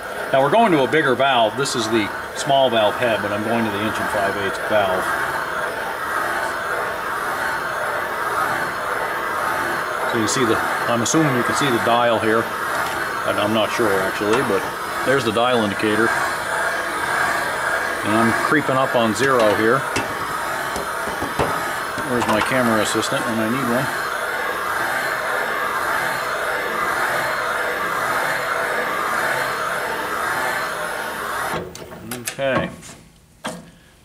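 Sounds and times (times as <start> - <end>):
valve seat cutting machine running: 0.0 - 31.8.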